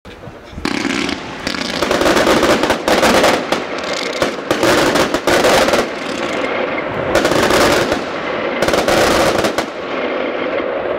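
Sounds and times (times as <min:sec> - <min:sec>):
fireworks launches and bursts: 0:00.6 - 0:10.9.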